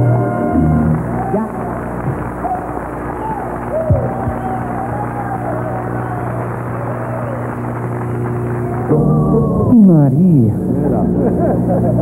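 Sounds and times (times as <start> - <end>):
big band holding a chord: 0.0 - 12.0
higher wavering line: 8.6 - 11.4.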